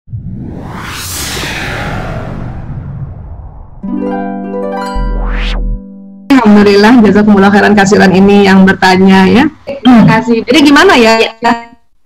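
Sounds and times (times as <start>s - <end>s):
whoosh sound effect: 0.1s - 4.0s, 4.9s - 5.8s.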